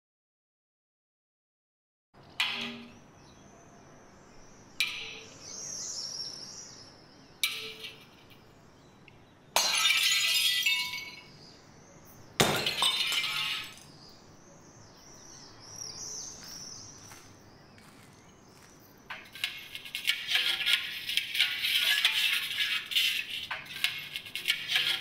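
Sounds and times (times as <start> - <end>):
birds chirping: 2.2 - 25.0
glass pieces clattering: 9.6 - 11.3, 12.4 - 13.9
hammer striking glass: 12.4 - 13.8.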